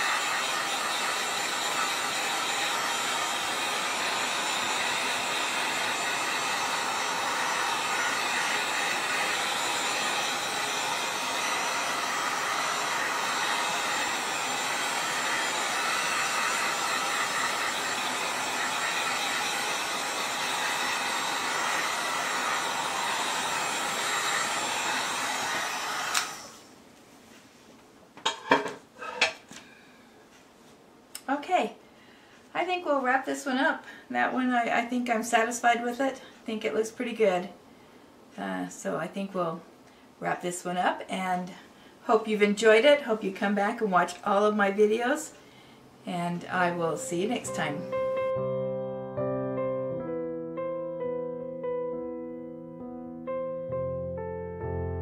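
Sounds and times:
heat gun blowing air: 0:00.0 - 0:26.7.

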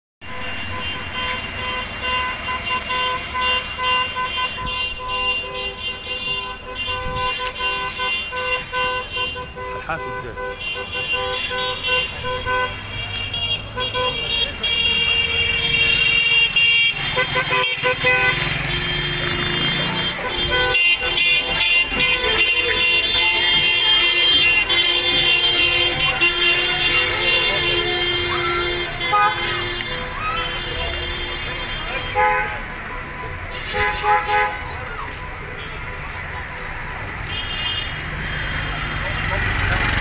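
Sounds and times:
car horns honking: 0:00.2 - 0:40.0
slow cars running: 0:00.2 - 0:40.0
people shouting: 0:25.6 - 0:29.3, 0:29.9 - 0:31.1.

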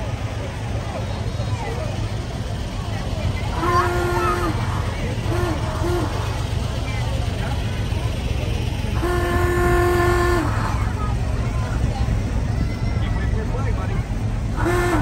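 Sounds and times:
low rumble of slow engines: 0:00.0 - 0:15.0
vehicle horn honking: 0:03.5 - 0:06.6, 0:09.0 - 0:10.8, 0:14.6 - 0:15.0.

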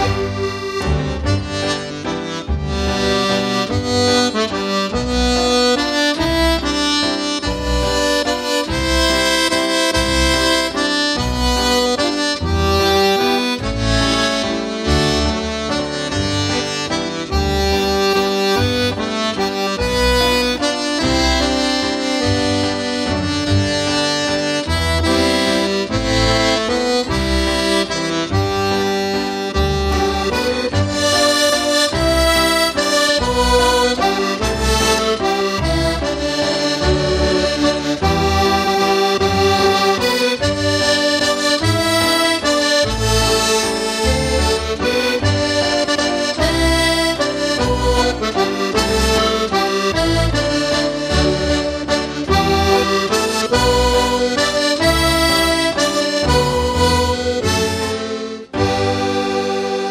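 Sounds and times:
accordion bass notes and chords: 0:00.0 - 0:59.9
button accordion melody: 0:00.0 - 0:59.9.

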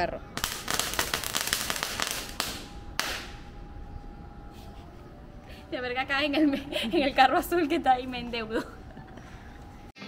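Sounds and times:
firecrackers popping: 0:00.4 - 0:03.5
loud firecracker bangs: 0:00.4 - 0:03.5.

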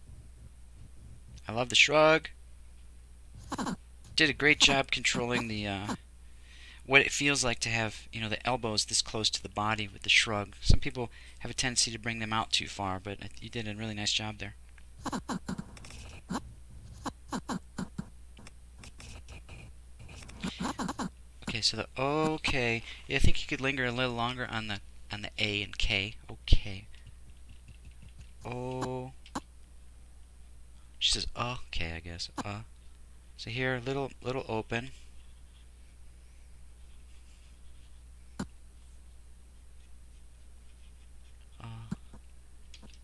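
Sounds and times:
steady low hum: 0:00.0 - 0:43.0
stylus scratching on tablet: 0:03.4 - 0:03.8, 0:15.0 - 0:21.1.

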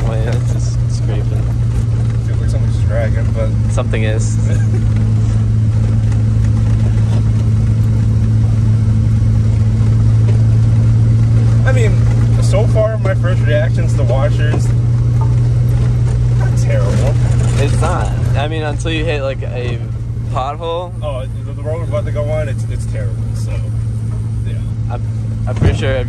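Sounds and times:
car engine drone: 0:00.0 - 0:26.0
road noise: 0:00.0 - 0:26.0.

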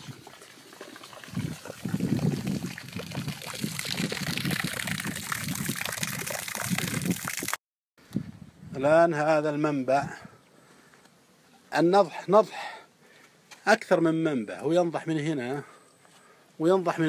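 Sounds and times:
stream water trickling and splashing: 0:00.0 - 0:07.6.

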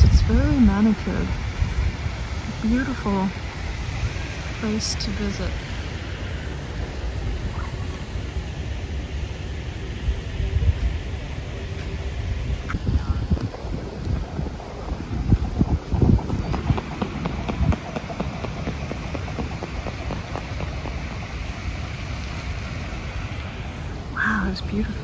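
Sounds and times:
steady hiss: 0:00.0 - 0:25.0
wind buffeting the microphone: 0:00.0 - 0:25.0.

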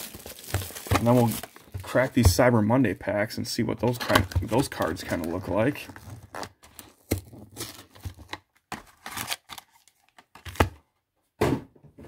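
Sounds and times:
foil wrappers crinkling: 0:00.0 - 0:02.1
cardboard box handled: 0:00.0 - 0:02.3.

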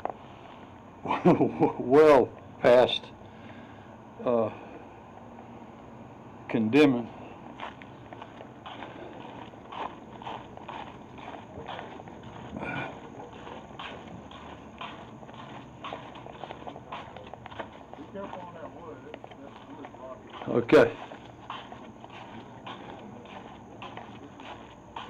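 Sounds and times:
footsteps walking: 0:07.3 - 0:25.0.

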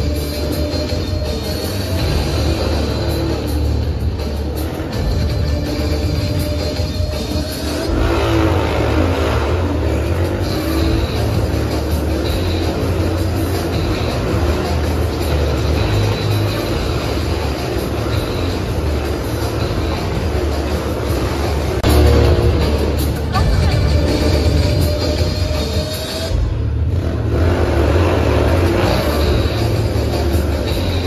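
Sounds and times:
loud show music: 0:00.0 - 0:31.0
motorcycle engines revving: 0:00.0 - 0:31.0.

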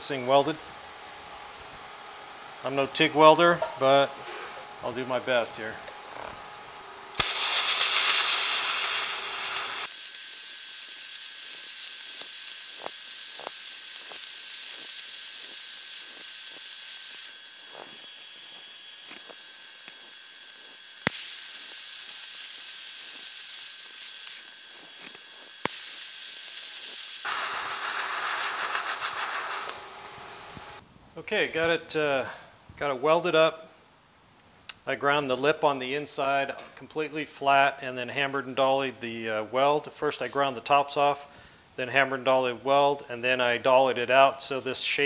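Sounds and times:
welding arc hissing: 0:07.1 - 0:30.8.

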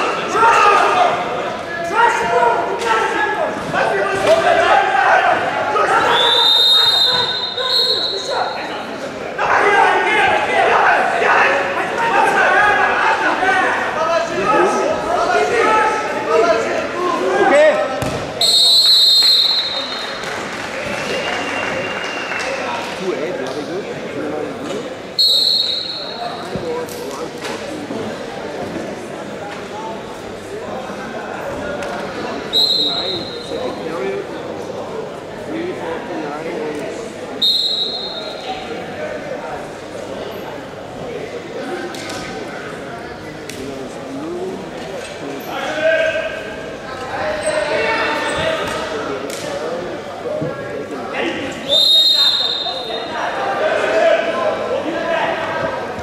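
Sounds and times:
raised voices echoing in hall: 0:00.0 - 0:56.0.

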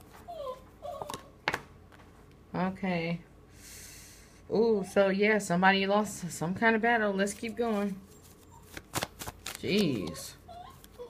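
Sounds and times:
dog whimpering: 0:00.1 - 0:01.4, 0:07.5 - 0:08.8, 0:09.8 - 0:11.0.

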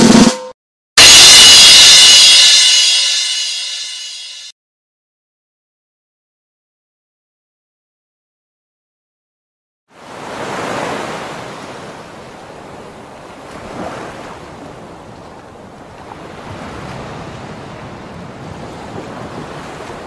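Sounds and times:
waves washing in: 0:10.0 - 0:20.0.

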